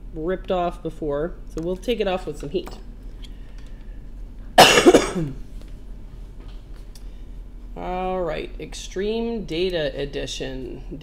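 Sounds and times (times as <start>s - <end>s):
person coughing: 4.6s - 5.4s.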